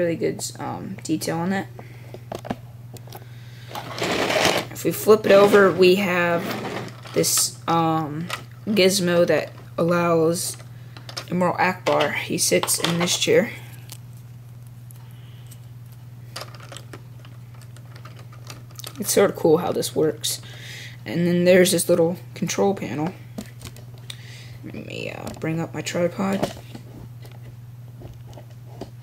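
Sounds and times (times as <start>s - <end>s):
steady low hum: 0.0s - 29.0s
plastic toy scraping and rattling: 3.7s - 7.5s.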